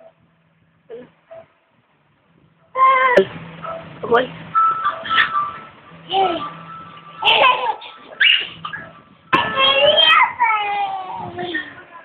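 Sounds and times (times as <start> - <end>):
faint steady hum: 0.0 - 12.0
toddler babbling: 9.4 - 11.7.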